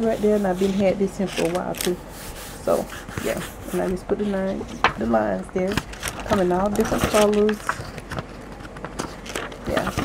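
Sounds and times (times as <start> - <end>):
paper pages rustling: 0.1 - 2.0, 2.9 - 10.0.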